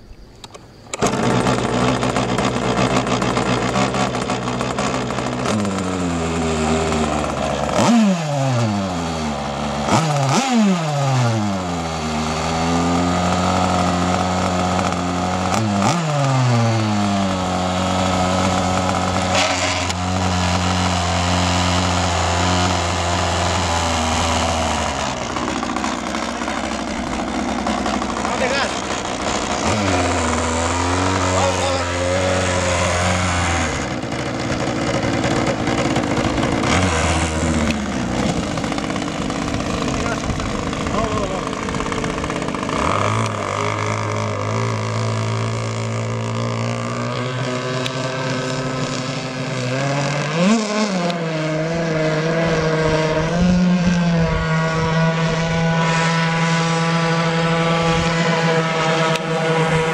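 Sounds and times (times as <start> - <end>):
engine throttle blips: 0.0 - 59.9
two-stroke engine idling: 0.5 - 59.9.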